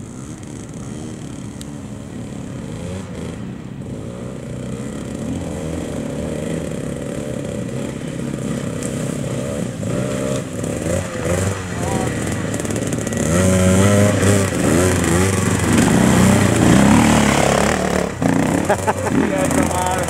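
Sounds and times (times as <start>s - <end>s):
two-stroke motorcycle engines revving: 0.0s - 20.0s.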